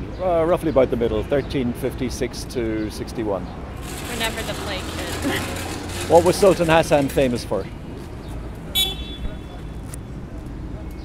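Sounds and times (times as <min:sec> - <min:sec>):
street traffic rumble: 0:00.0 - 0:11.0
short high car horn toot: 0:08.8 - 0:09.6.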